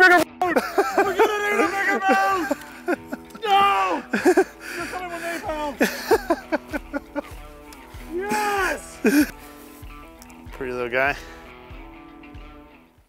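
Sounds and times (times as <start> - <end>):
man's excited vocal exclamations: 0.0 - 2.6, 3.3 - 4.1, 4.8 - 5.8, 8.0 - 9.3
background music: 0.0 - 13.0.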